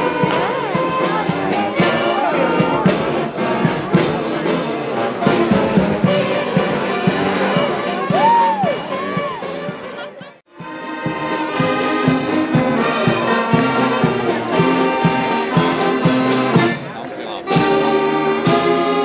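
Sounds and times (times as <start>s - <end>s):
saxophones: 0.0s - 19.0s
string band playing: 0.0s - 19.0s
accordions: 9.0s - 19.0s.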